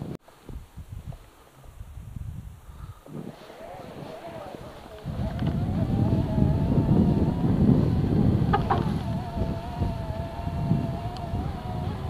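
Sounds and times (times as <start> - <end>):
rumble of travel: 0.6 - 12.0
small vehicle engine running: 3.3 - 12.0.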